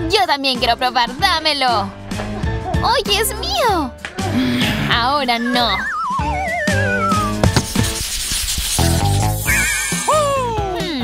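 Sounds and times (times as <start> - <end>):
wavering high tone: 5.4 - 7.4.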